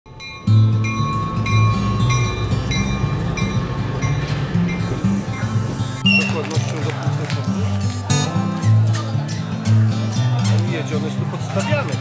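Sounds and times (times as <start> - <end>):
instrumental music with bass: 0.1 - 12.0.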